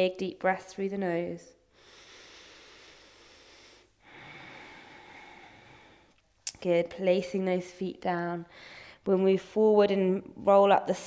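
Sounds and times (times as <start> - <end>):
woman breathing through nose: 1.7 - 6.2, 8.5 - 9.0.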